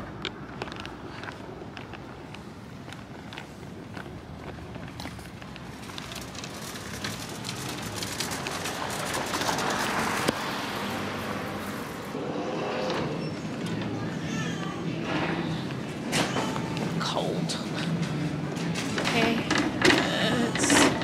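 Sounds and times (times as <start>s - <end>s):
parking lot traffic: 0.0s - 21.0s.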